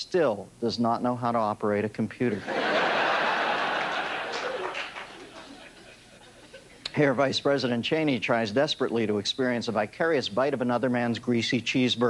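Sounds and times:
audience laughter: 2.3s - 6.8s.

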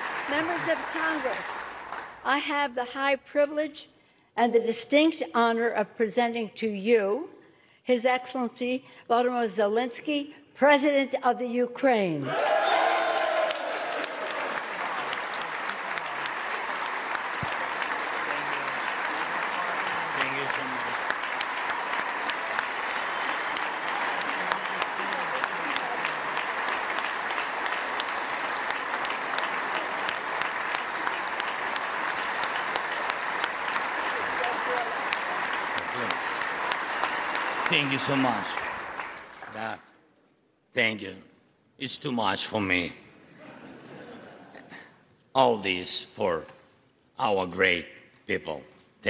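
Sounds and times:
crowd applauding: 0.0s - 2.3s, 12.3s - 39.8s.

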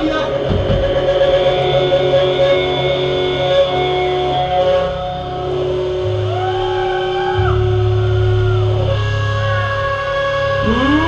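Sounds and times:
electric guitars sustained notes: 0.0s - 11.0s
low bass drone: 0.0s - 11.0s.

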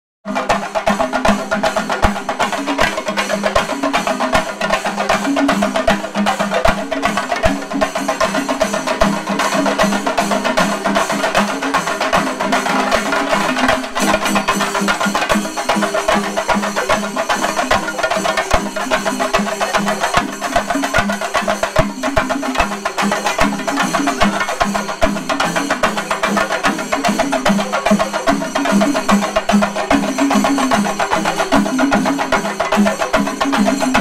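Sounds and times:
chenda drums beaten in fast rhythm: 0.2s - 34.0s.

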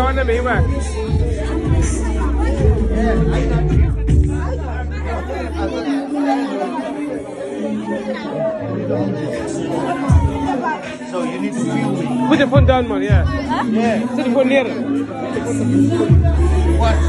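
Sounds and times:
music with deep bass: 0.0s - 6.1s, 11.5s - 17.0s
guests chattering: 0.0s - 17.0s.

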